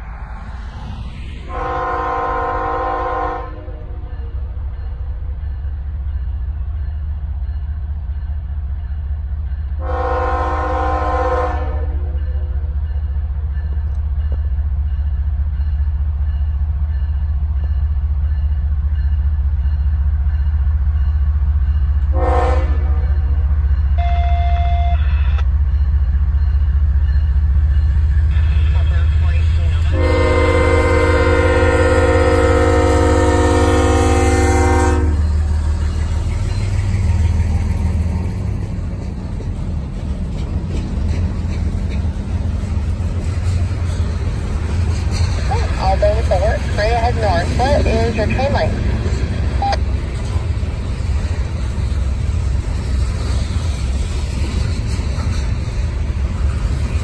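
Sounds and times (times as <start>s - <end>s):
diesel locomotive engine rumble: 0.0s - 57.0s
train horn blasts: 1.5s - 3.8s, 9.8s - 12.1s, 22.1s - 23.2s, 24.0s - 25.3s, 29.8s - 35.4s
freight cars rolling past: 34.6s - 57.0s.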